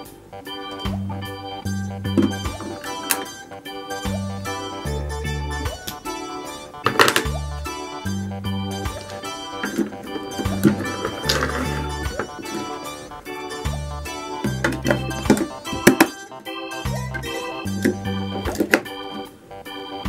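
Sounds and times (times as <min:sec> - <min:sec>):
keyboard music with bass line: 0:00.0 - 0:20.0.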